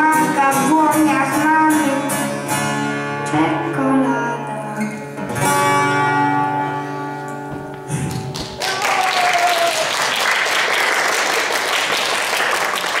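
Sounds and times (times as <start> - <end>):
acoustic guitar chord ringing: 0.0 - 8.1
audience applause: 7.9 - 13.0.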